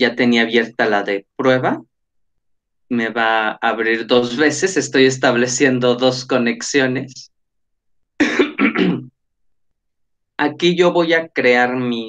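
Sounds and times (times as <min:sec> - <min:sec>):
man clearing his throat: 0:08.2 - 0:09.1.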